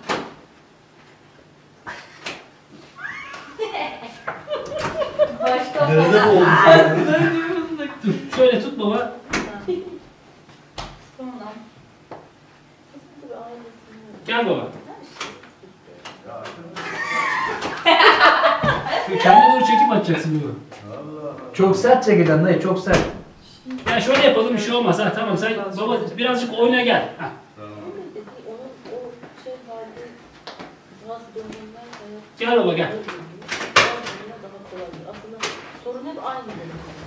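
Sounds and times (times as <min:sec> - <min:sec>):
man laughing: 0:03.0 - 0:08.4, 0:16.8 - 0:19.8.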